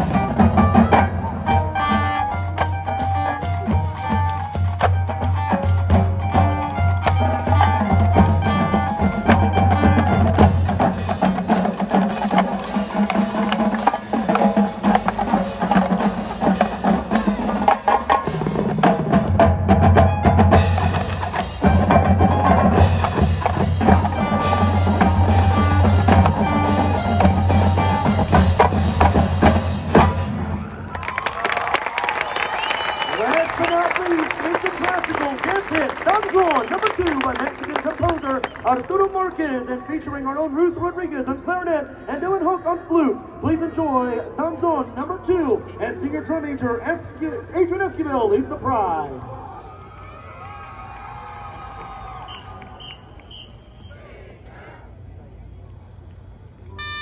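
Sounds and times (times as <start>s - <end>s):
marching band playing: 0.0s - 42.1s, 56.8s - 57.0s
crowd cheering: 30.3s - 39.6s, 49.1s - 54.4s
applause: 30.9s - 39.6s, 50.4s - 53.3s.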